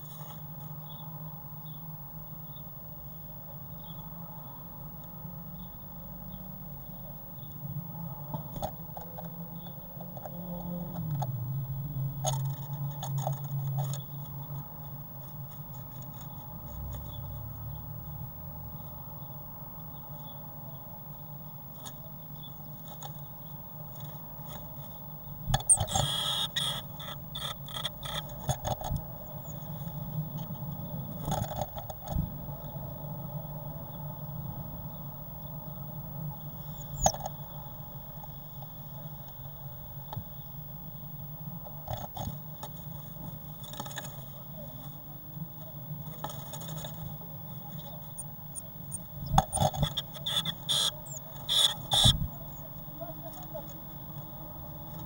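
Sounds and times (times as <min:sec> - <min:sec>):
steady hum: 0:00.0 - 0:55.0
birds scratching on wood: 0:12.2 - 0:17.5, 0:21.7 - 0:32.2, 0:41.8 - 0:44.8, 0:45.9 - 0:55.0
bird fluttering: 0:23.9 - 0:30.5, 0:46.1 - 0:52.6.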